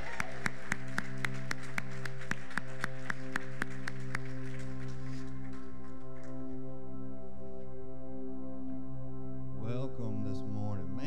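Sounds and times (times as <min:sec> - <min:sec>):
congregation clapping: 0:00.0 - 0:06.5
sustained background music chords: 0:00.0 - 0:11.0.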